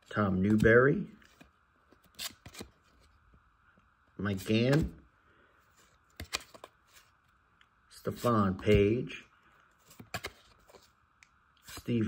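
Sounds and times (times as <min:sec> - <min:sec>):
cards sliding swishes: 0:05.7 - 0:07.2, 0:09.8 - 0:11.0, 0:11.6 - 0:12.0.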